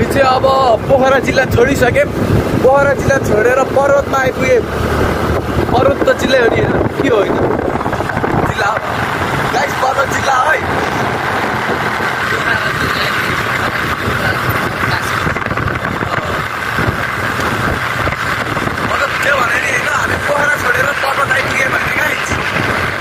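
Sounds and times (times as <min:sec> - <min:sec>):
motorcycle engine: 0:00.0 - 0:23.0
wind on microphone: 0:00.0 - 0:23.0.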